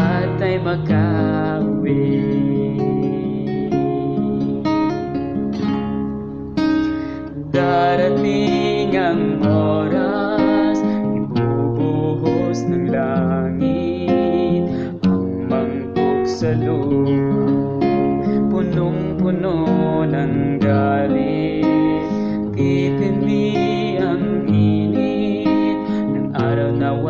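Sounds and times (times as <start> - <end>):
acoustic guitar plucked and strummed: 0.0 - 27.0.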